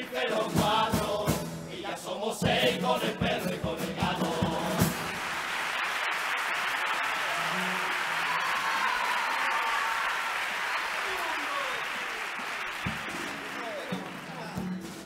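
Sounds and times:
audience applauding: 0:04.6 - 0:15.0
shouts and voices: 0:07.2 - 0:12.4.

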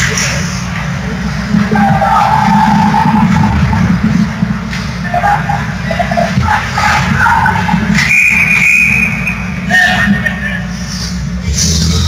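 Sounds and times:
steady low hum: 0:00.0 - 0:12.0
people shouting: 0:05.1 - 0:10.1.

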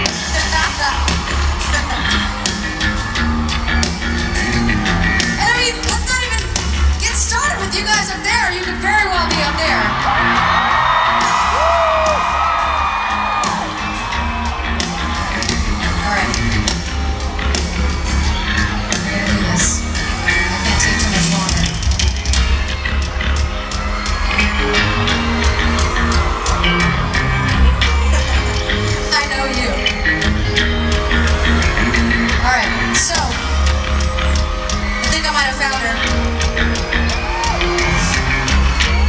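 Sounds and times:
crowd screaming and cheering: 0:00.0 - 0:39.0
live rock band playing: 0:00.0 - 0:39.0.

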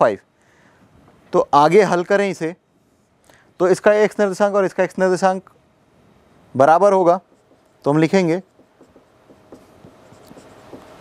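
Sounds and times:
marker writing on whiteboard: 0:07.0 - 0:11.0.

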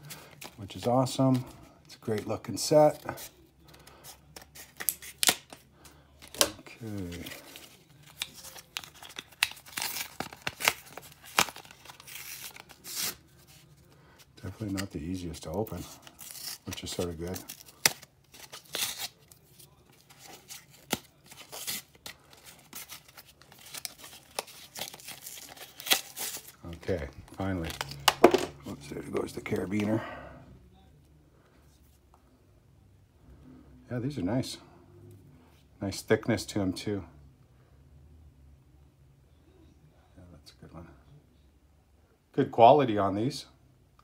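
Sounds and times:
plastic tearing: 0:06.2 - 0:13.6, 0:15.8 - 0:28.5
plastic packaging crinkling: 0:06.3 - 0:13.6, 0:15.8 - 0:28.5.

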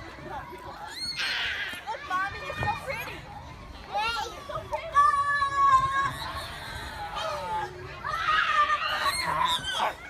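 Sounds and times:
child squealing: 0:08.3 - 0:10.0.

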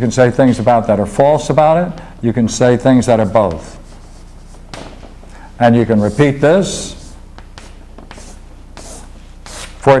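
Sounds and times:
steady low hum: 0:00.0 - 0:10.0
chalk drawing on blackboard: 0:03.6 - 0:04.6, 0:05.8 - 0:09.8.

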